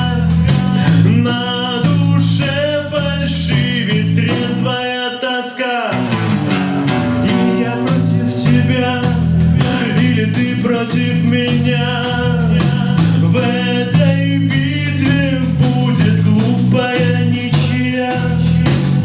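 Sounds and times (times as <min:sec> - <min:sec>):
electric bass line: 0:00.0 - 0:04.8, 0:05.9 - 0:19.0
person singing: 0:00.0 - 0:19.0.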